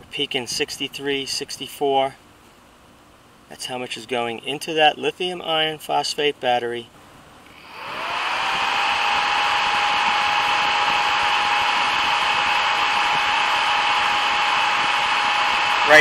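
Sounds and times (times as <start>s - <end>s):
electric fan whirring: 6.9s - 16.0s.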